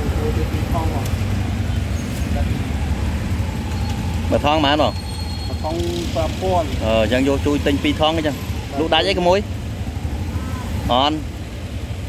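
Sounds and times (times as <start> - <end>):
motorbike engine idling: 0.0 - 12.0.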